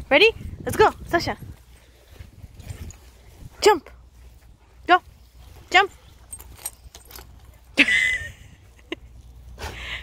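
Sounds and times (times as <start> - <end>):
metallic jingling and clicking: 2.5 - 3.3, 5.0 - 9.6.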